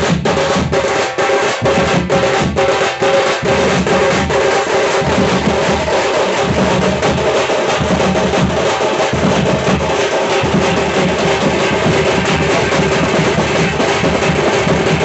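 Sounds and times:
frame drum and bass drums: 0.0 - 15.0
small metal drums struck with sticks: 0.0 - 15.0.

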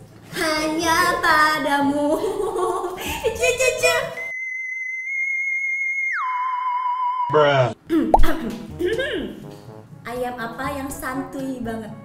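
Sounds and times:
women's voices: 0.4 - 4.2, 10.1 - 12.0.

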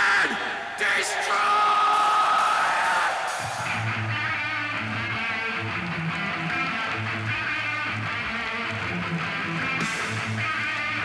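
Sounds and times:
heavy metal electric guitars: 0.0 - 11.0
bass: 3.7 - 11.0.

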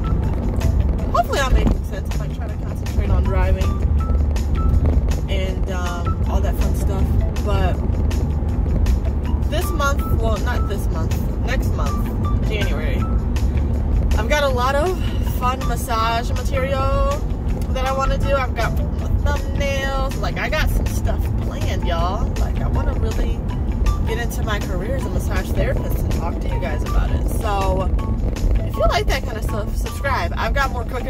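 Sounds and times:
car cabin rumble: 0.0 - 31.0.

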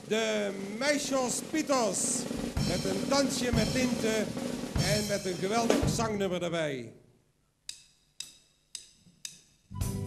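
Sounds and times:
song music: 0.0 - 6.2, 9.7 - 10.0
sharp count-in clicks: 7.6 - 9.6.

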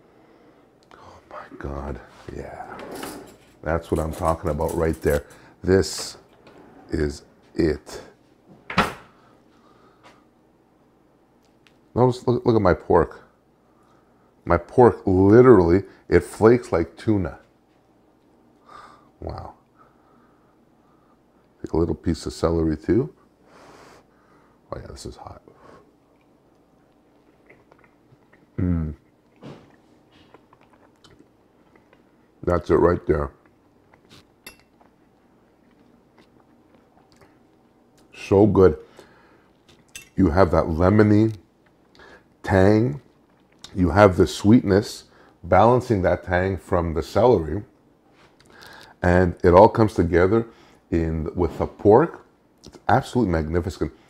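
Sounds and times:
person chewing food: 26.0 - 32.4, 33.4 - 38.1, 43.1 - 43.8.

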